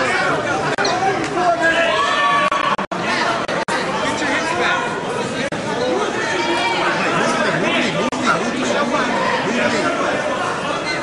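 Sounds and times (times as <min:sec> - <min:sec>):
spectators talking and calling out: 0:00.0 - 0:11.0.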